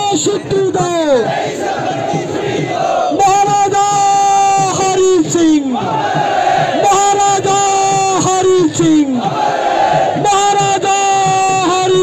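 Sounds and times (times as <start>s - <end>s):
crowd shouting together: 1.0s - 12.0s.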